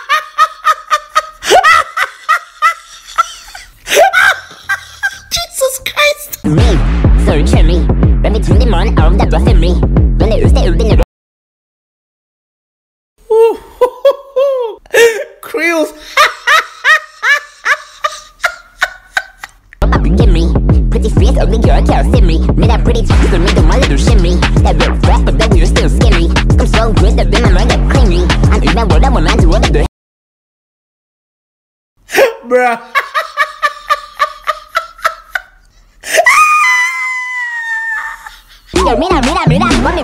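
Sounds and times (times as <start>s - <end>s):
woman laughing: 0.0s - 5.4s, 13.3s - 15.4s, 16.0s - 19.8s, 32.1s - 40.0s
person laughing staccato: 16.6s - 19.6s, 38.0s - 40.0s.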